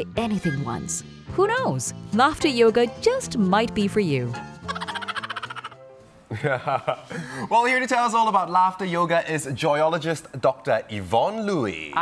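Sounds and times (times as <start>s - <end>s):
fast pulsing laughter: 4.7s - 5.8s
man and woman laughing: 4.7s - 7.4s.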